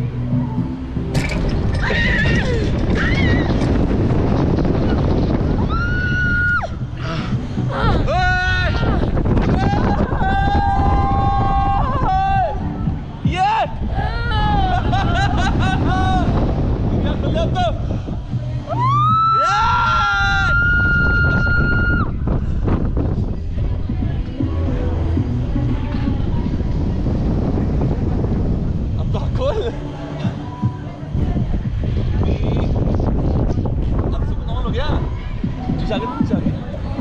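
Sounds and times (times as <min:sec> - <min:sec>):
wind rushing on microphone: 0:00.0 - 0:37.0.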